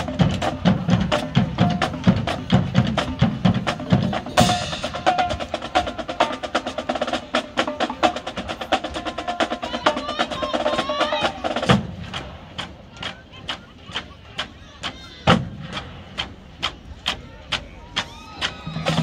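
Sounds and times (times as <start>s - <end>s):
marching drumline cadence: 0.0s - 19.0s.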